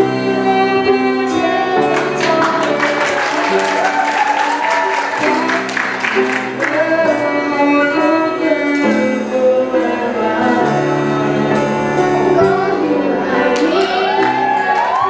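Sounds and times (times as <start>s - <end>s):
children singing together: 4.7s - 14.8s.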